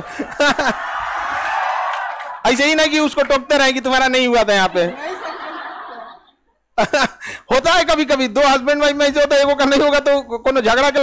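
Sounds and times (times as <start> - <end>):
group of people laughing: 0.0 - 1.8, 4.2 - 7.5
man speaking: 2.4 - 5.0, 7.5 - 11.0.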